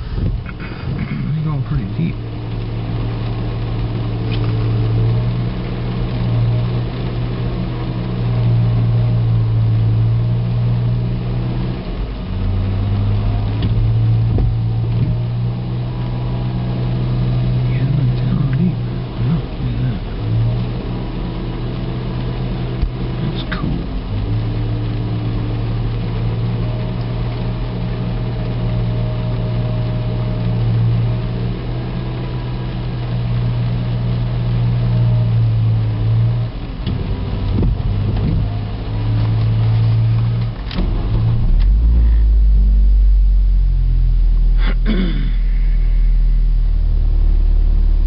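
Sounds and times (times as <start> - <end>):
car engine humming: 0.0 - 48.0
deep rumble: 0.0 - 48.0.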